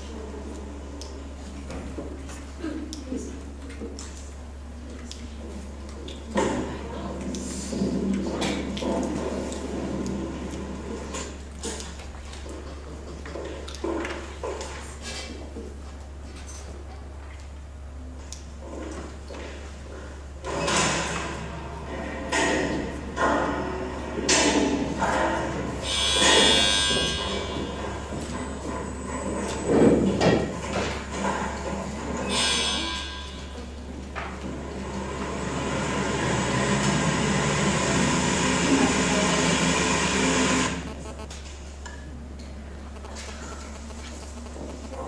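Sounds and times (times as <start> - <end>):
constant low hum: 40.7 - 45.0.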